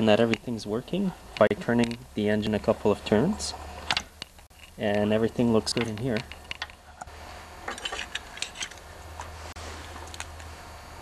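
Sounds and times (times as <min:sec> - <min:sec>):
steady low hum: 0:00.0 - 0:11.0
metal parts clicking: 0:03.8 - 0:08.9.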